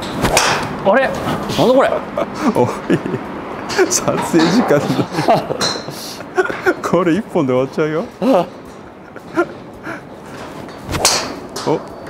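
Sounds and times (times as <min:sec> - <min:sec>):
golf club swish: 0:10.9 - 0:11.3.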